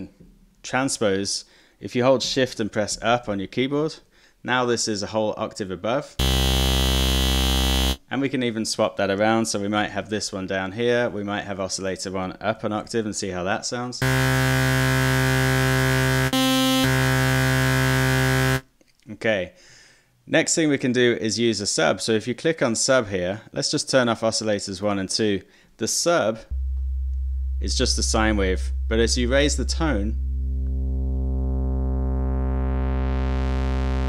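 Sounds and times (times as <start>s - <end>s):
sustained synth note: 6.2s - 8.0s, 14.0s - 18.6s, 26.5s - 34.0s.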